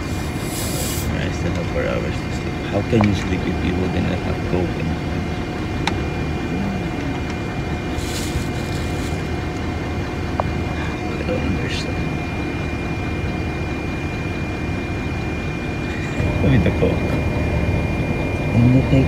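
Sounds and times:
bus rumble: 0.0s - 19.0s
thin steady whine: 0.0s - 19.0s.

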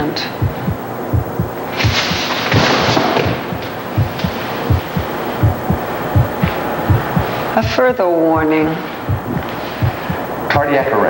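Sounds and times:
hissing noise rush: 0.4s - 2.4s, 3.2s - 7.8s, 8.9s - 10.5s
heartbeat thumps: 0.4s - 10.8s.

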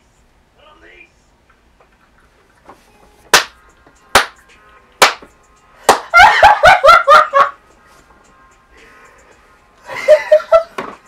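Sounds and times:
man clapping hands: 4.2s - 4.4s, 5.0s - 5.2s, 5.9s - 6.1s
man laughing: 6.1s - 7.6s, 9.8s - 10.8s.

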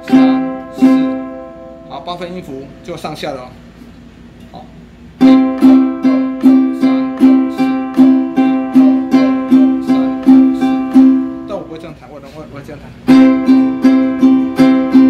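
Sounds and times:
ukulele strumming: 0.0s - 2.8s, 5.2s - 11.9s, 13.1s - 15.0s.

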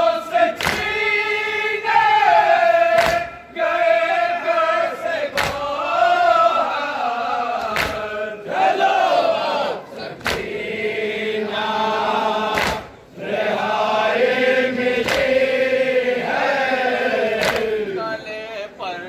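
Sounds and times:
men chanting in unison: 0.0s - 18.4s
lead reciter: 0.0s - 19.0s.

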